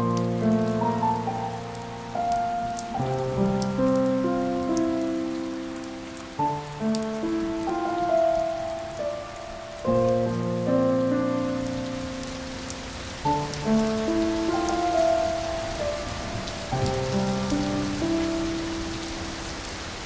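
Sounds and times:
slow instrumental music: 0:00.0 - 0:19.6
raindrop ticks: 0:00.0 - 0:20.0
steady rain: 0:00.0 - 0:20.0.

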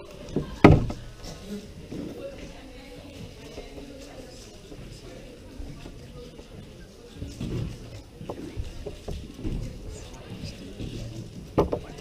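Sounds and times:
busy room rumble: 0:00.0 - 0:12.0
faint indistinct chatter: 0:00.0 - 0:12.0.

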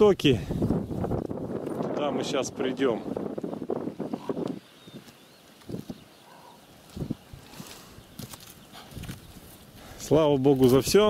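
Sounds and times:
dry grass rustling: 0:03.1 - 0:11.0
footsteps on grass and mud: 0:04.4 - 0:11.0.

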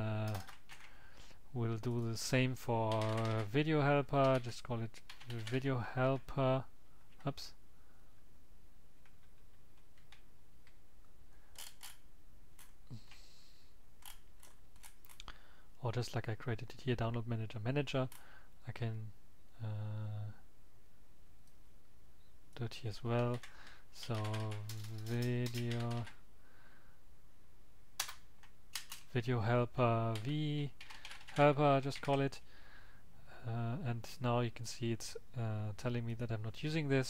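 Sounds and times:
low room hum: 0:00.0 - 0:37.0
computer keyboard keystrokes: 0:00.3 - 0:00.9, 0:23.2 - 0:26.2, 0:28.0 - 0:29.0, 0:30.1 - 0:31.4.

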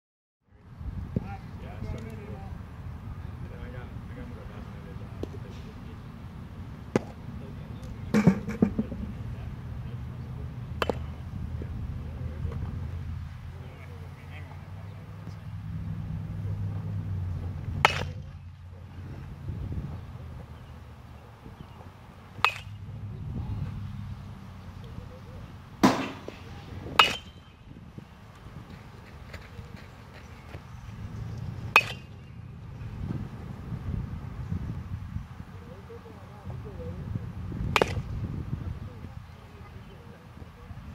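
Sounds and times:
low background murmur: 0:00.5 - 0:33.6, 0:35.4 - 0:40.9
aluminum bat hitting baseball: 0:06.9 - 0:07.2, 0:08.1 - 0:09.2, 0:10.7 - 0:11.2, 0:17.6 - 0:18.5, 0:22.3 - 0:22.9, 0:25.8 - 0:27.6, 0:31.6 - 0:32.4, 0:37.7 - 0:38.2
ball popping into catcher's mitt: 0:37.7 - 0:38.1.

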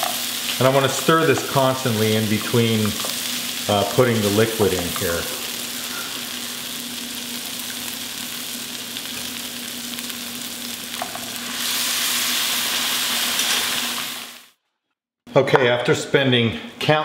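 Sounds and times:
rice sizzling in hot oil: 0:00.0 - 0:14.5
stock hissing in hot pan: 0:00.0 - 0:14.5.

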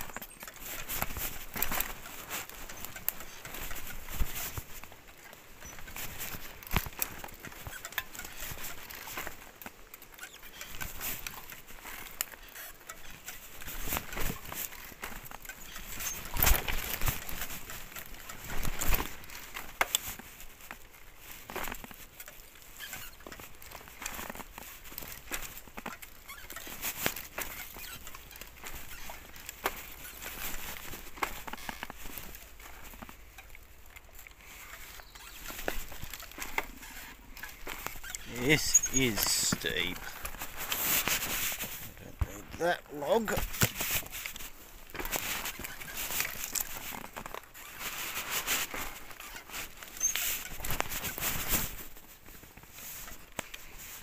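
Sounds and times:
tyres crunching over stones: 0:11.1 - 0:52.1.

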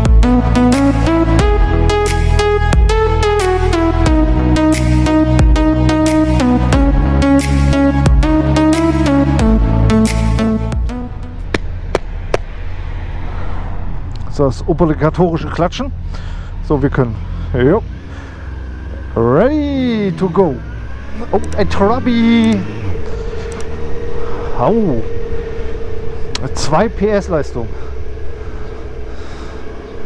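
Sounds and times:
motorcycle engine rumbling: 0:00.0 - 0:30.0
motorcycle engine idling: 0:21.2 - 0:30.0.

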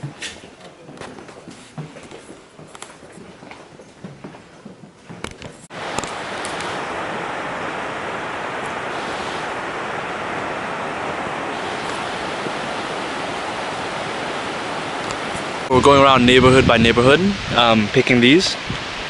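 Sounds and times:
flowing river water: 0:05.7 - 0:19.0.

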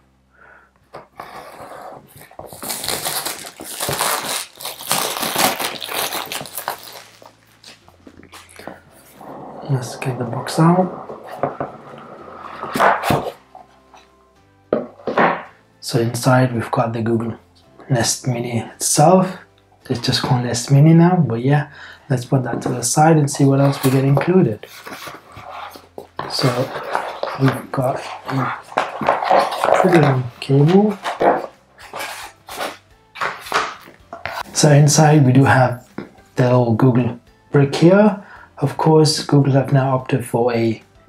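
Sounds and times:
faint background music: 0:00.0 - 0:41.0
cardboard box rustling open: 0:01.6 - 0:09.2
cardboard sliding and scraping: 0:08.2 - 0:14.1, 0:23.6 - 0:34.6.

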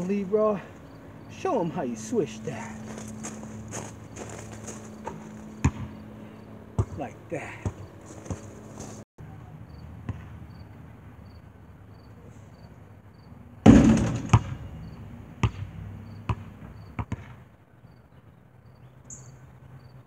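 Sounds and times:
crickets chirping: 0:00.0 - 0:06.7, 0:09.6 - 0:13.6, 0:14.6 - 0:15.1, 0:16.0 - 0:17.0, 0:17.8 - 0:20.0
basketball bouncing on asphalt: 0:03.1 - 0:06.2, 0:06.8 - 0:09.0, 0:10.0 - 0:10.6, 0:13.7 - 0:17.4.

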